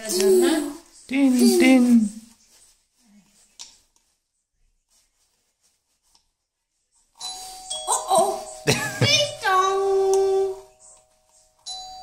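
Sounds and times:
doorbell ding-dong chime: 7.2s - 12.0s.

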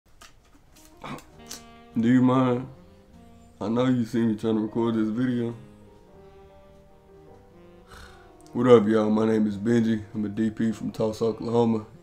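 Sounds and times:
soft music with held notes: 0.2s - 12.0s.

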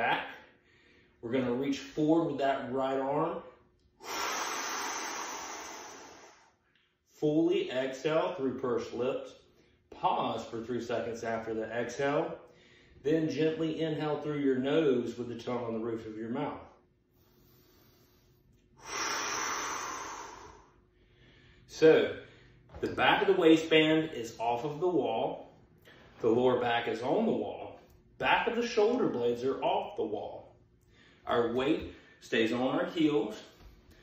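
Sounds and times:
man exhaling: 4.0s - 6.6s, 17.2s - 21.6s.

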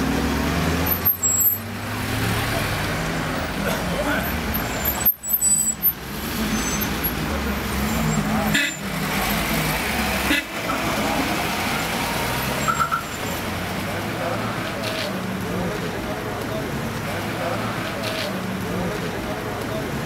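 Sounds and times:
people talking indistinctly: 12.9s - 20.0s.

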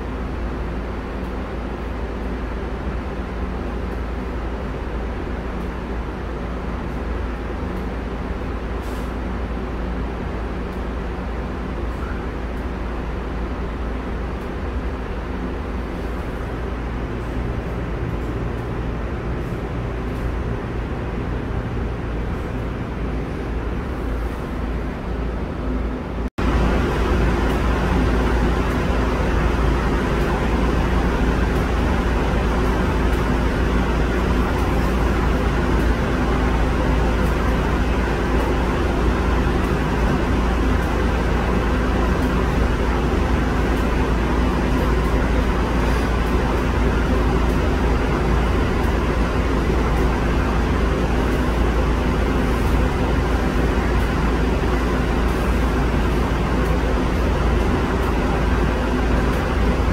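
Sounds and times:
light-rail car hum: 0.0s - 59.9s
ventilation and heating noise: 0.0s - 59.9s.

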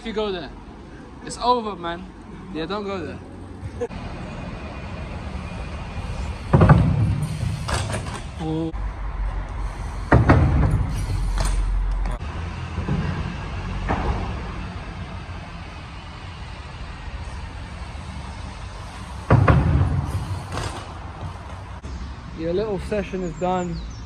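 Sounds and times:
bike thumps: 6.4s - 8.4s, 10.1s - 12.2s, 19.2s - 21.8s.

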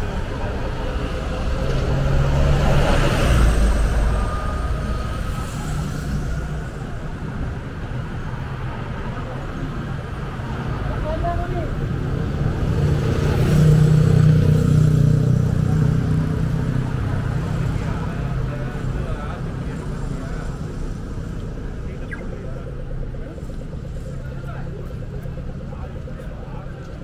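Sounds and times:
people's voices: 0.0s - 27.0s
vehicle engine passing by: 0.2s - 6.5s.

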